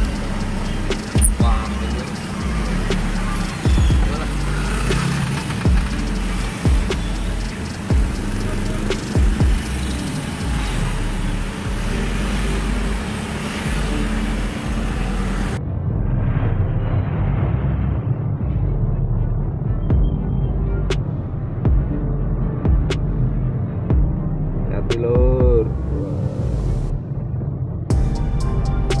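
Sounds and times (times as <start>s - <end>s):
low hum: 0.0s - 24.8s
music: 0.0s - 29.0s
road traffic rumble: 0.0s - 29.0s.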